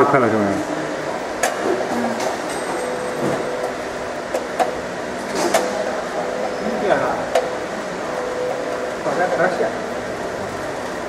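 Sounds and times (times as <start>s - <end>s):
laser marking machine humming: 0.0s - 11.0s.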